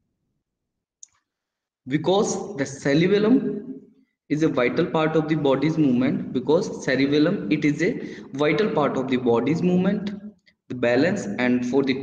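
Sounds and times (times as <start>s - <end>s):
man speaking: 1.9s - 3.7s, 4.3s - 12.0s.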